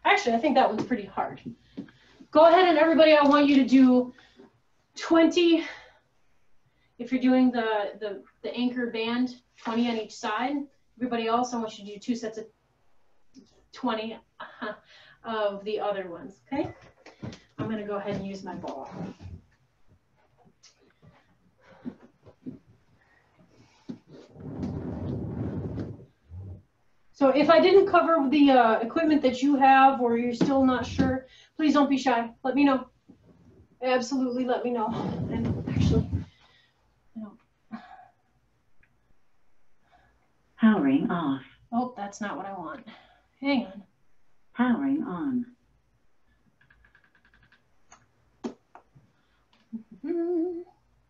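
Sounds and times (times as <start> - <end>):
exercise ball rubbing and scraping: 16.5 - 26.8, 34.8 - 36.4
woman humming: 49.7 - 50.8.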